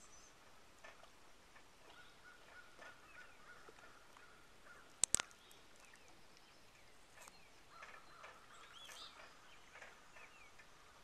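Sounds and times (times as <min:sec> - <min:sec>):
outdoor ambience: 0:00.0 - 0:11.0
sharp clicks: 0:05.0 - 0:05.4.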